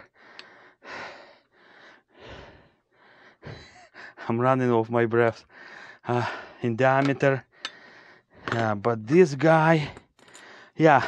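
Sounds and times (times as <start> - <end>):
man breathing heavily: 0.0 - 4.4, 5.4 - 8.6, 9.7 - 11.0.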